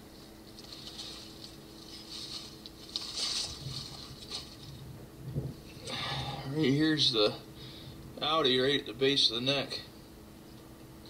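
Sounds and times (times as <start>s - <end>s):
rustling in dry leaves and grass: 0.0s - 6.3s
faint steady hum: 0.0s - 11.0s.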